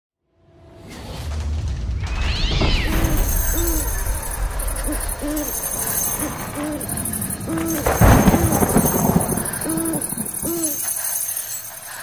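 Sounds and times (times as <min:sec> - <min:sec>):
low rumbling drone: 0:02.1 - 0:11.0
owl hooting: 0:02.4 - 0:11.0.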